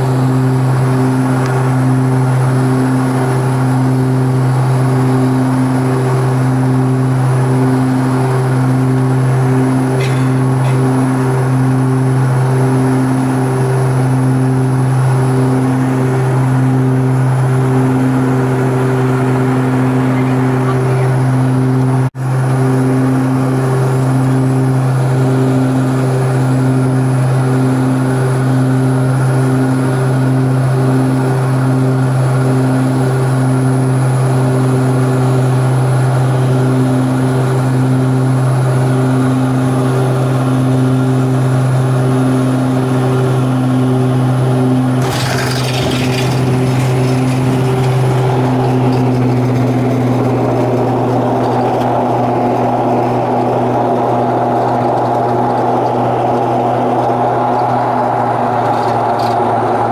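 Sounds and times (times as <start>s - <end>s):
propeller drone in cabin: 0.0s - 59.9s.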